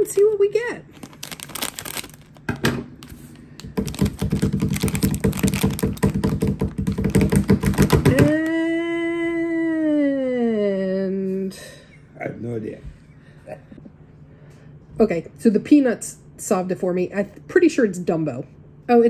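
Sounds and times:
foil pouch crinkling: 0.0s - 8.0s
woman humming hmm: 8.2s - 11.7s.

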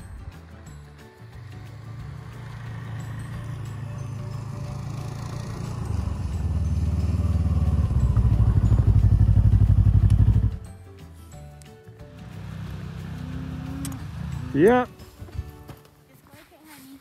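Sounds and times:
background music with held notes: 0.0s - 17.0s
snowmobile engine throbbing: 1.6s - 10.6s.

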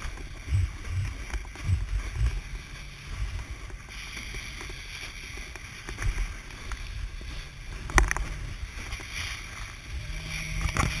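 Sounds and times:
water and wind rumble: 0.0s - 11.0s.

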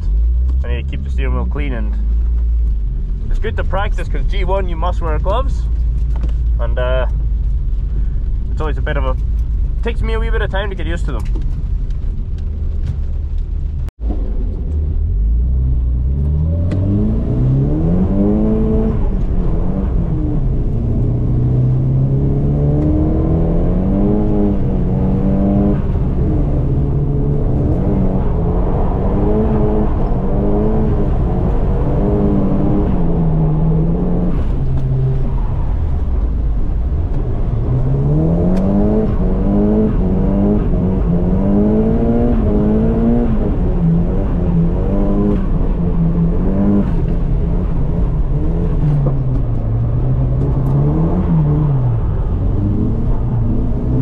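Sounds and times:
car engine revving: 0.0s - 11.5s, 13.1s - 54.0s.

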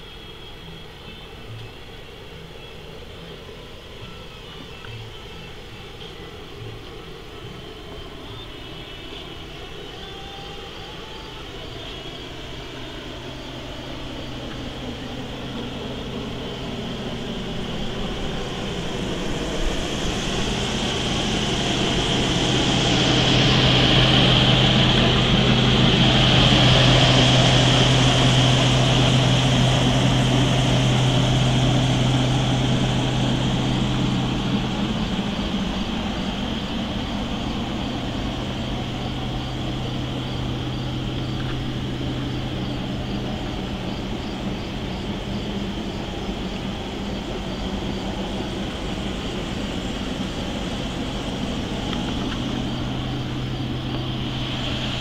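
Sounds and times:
propeller airplane droning: 0.0s - 55.0s.

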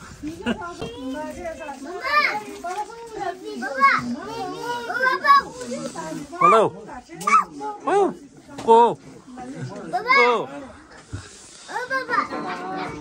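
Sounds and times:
children talking and calling out: 0.0s - 13.0s.

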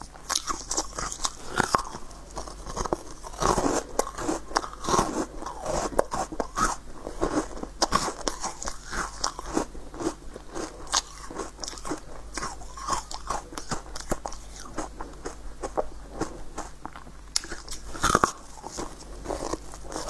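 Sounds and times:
crunchy chewing: 0.0s - 20.0s.

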